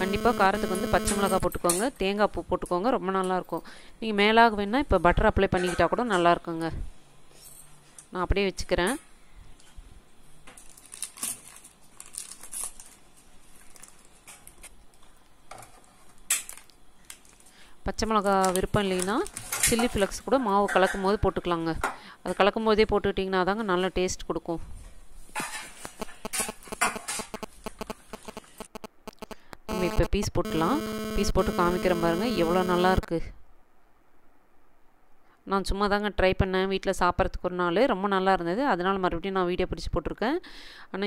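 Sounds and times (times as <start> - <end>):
baking paper crinkling: 10.6 - 15.0.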